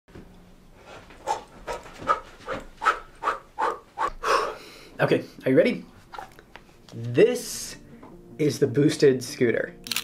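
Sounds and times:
rhythmic panting: 0.8 - 4.6.

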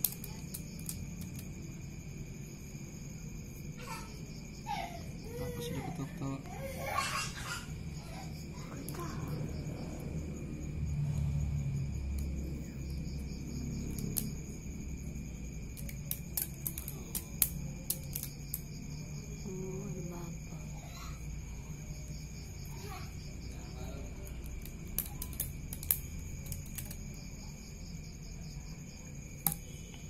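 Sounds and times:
crickets chirring: 0.0 - 30.0
wooden sticks knocking together: 15.7 - 18.7, 29.4 - 30.0.

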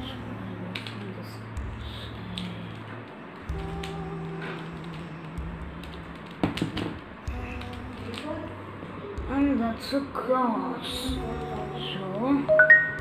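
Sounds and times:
background music with low notes: 0.0 - 13.0.

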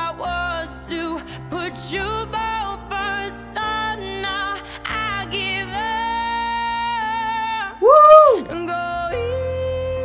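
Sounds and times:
music: 0.0 - 10.0
woman singing: 4.0 - 10.0.

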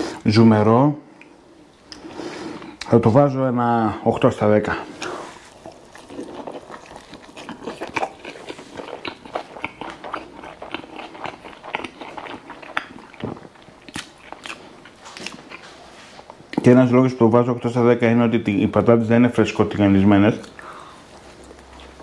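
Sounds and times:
man chewing a sandwich: 4.9 - 16.6, 20.4 - 22.0.

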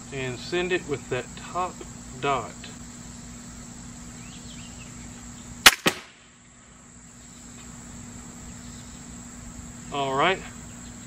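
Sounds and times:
crickets chirping: 0.0 - 11.0
crossbow firing crack: 5.6 - 6.4
arrow striking foam target: 5.7 - 6.2.

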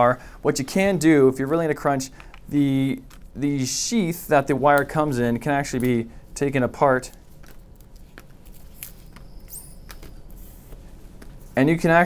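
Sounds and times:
high squeak: 9.0 - 10.4.

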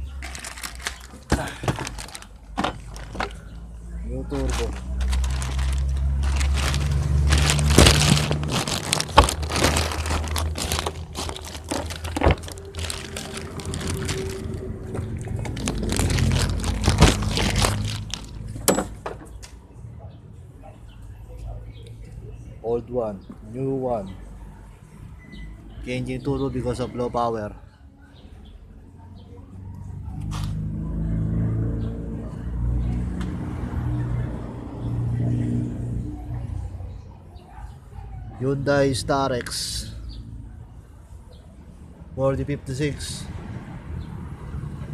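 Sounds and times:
vehicle engine humming: 0.0 - 22.4
plastic bag crinkling: 0.1 - 3.5, 4.3 - 18.6.

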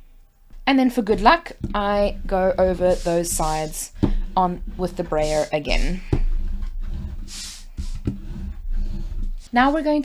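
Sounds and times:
brayer rolling over cardstock: 0.6 - 10.0.

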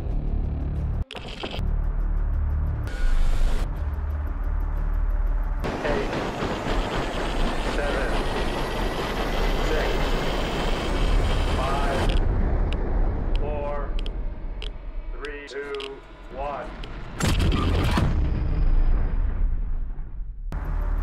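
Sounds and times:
deep bass drone: 0.0 - 6.1, 10.8 - 21.0
dense rushing roar: 5.6 - 17.5
loud cinematic hit: 17.0 - 20.6.

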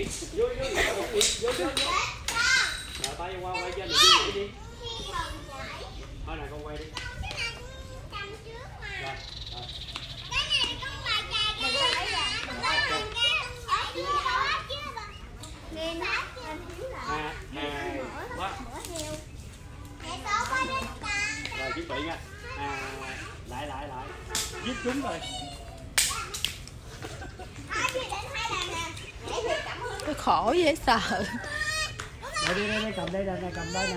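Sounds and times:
children shouting and squealing: 0.0 - 6.3, 6.9 - 30.4, 31.0 - 33.9.

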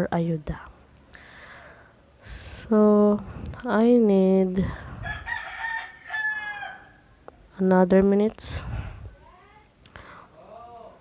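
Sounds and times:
rooster crowing: 5.0 - 7.2.

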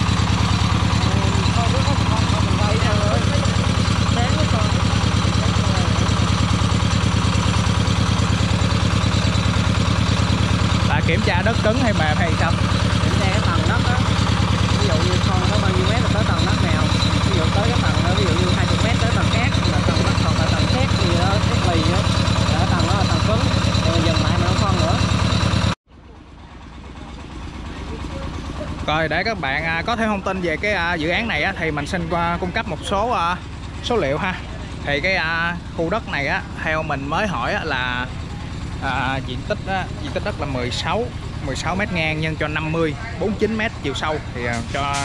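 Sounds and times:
drilling rig engine pulsing: 0.0 - 45.0
faint voices: 0.8 - 6.5, 10.8 - 25.2, 26.0 - 45.0.

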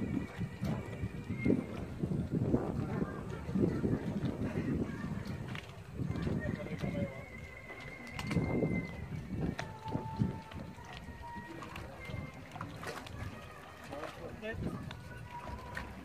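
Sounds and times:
people talking indistinctly: 11.2 - 15.9.

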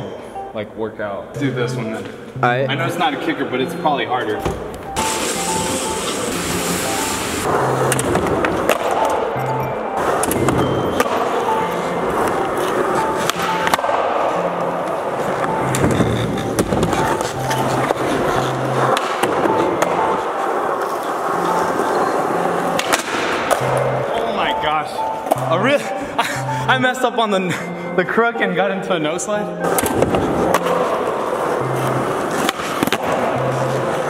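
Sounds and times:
background music with beat: 1.4 - 34.0
skateboard wheels rolling on concrete: 10.0 - 24.2.

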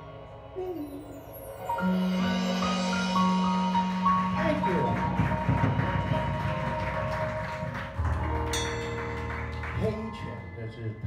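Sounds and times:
cymbal crash: 1.2 - 6.8
drum kit playing: 1.8 - 10.1.

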